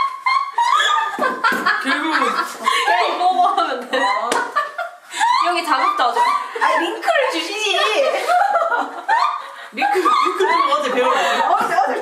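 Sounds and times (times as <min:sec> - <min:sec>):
people laughing: 0:00.0 - 0:12.0
people chatting: 0:00.6 - 0:12.0.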